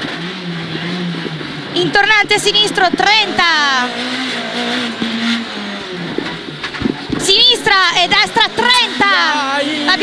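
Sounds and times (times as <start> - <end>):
rally car engine from inside: 0.0 - 10.0
tyre and road noise: 0.0 - 10.0.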